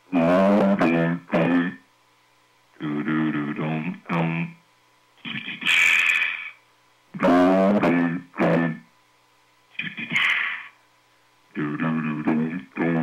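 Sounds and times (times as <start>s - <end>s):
processed sounds over cb radio: 0.1s - 1.8s, 2.8s - 4.6s, 5.2s - 6.6s, 7.2s - 8.9s, 9.7s - 10.8s, 11.5s - 13.0s.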